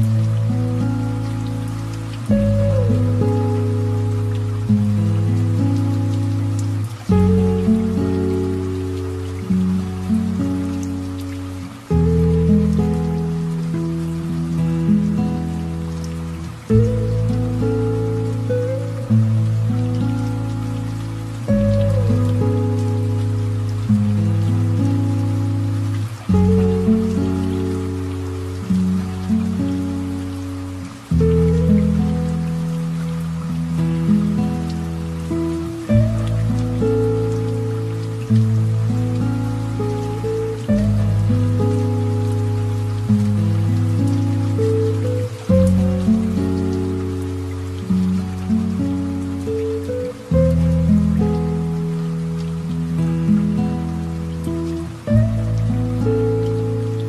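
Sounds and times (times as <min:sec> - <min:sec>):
light steady rain: 0:00.0 - 0:57.0.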